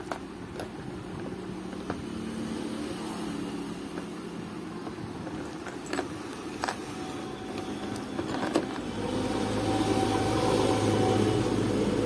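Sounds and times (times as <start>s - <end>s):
low engine hum: 7.1s - 12.0s.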